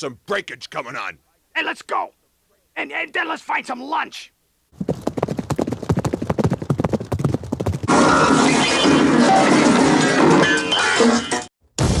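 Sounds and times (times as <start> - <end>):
quick footsteps on hard surface: 4.8 - 7.9.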